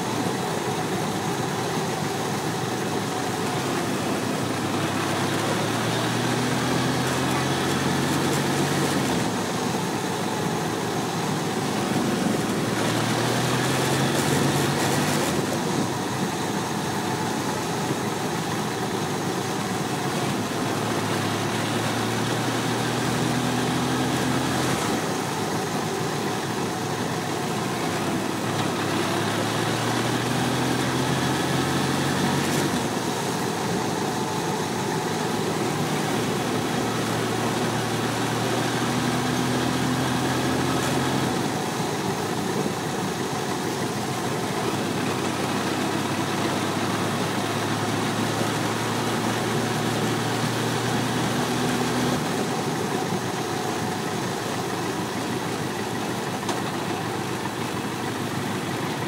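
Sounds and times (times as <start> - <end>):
motorcycle engine running: 0.0 - 59.0.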